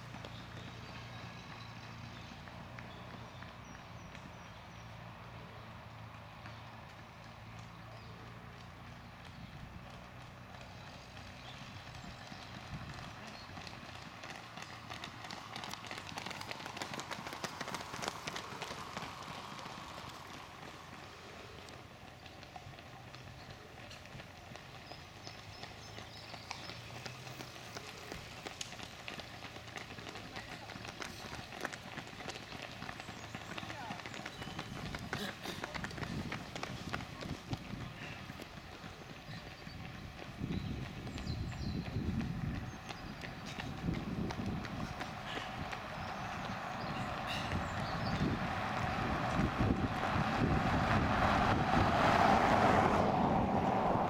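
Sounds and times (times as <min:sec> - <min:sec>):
running shoes slapping road: 0:00.0 - 0:54.0.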